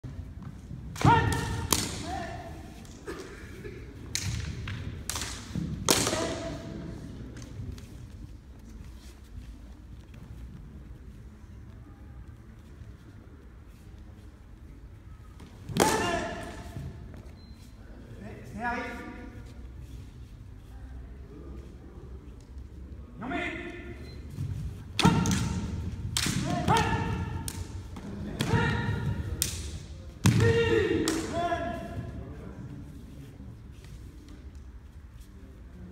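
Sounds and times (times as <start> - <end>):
shouted kiai calls: 1.0 - 2.8, 15.7 - 16.8, 25.0 - 29.3, 30.3 - 32.0.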